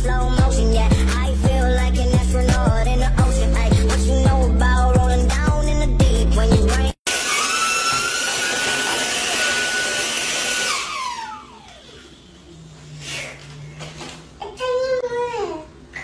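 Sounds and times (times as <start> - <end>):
vacuum cleaner whining: 7.0 - 13.5
vacuum motor spinning down: 7.1 - 12.9.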